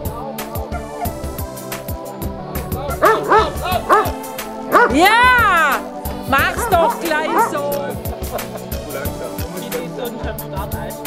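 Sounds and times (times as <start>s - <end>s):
background music: 0.0s - 11.0s
dog barking: 0.7s - 1.3s, 2.7s - 7.8s.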